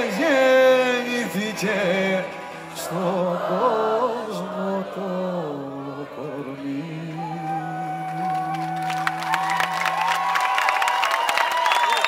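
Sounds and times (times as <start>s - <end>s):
audience applause and cheering: 7.1s - 12.0s.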